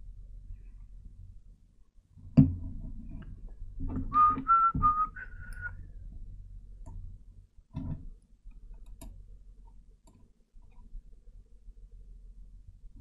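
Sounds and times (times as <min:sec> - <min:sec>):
person whistling short notes: 0:04.1 - 0:05.8.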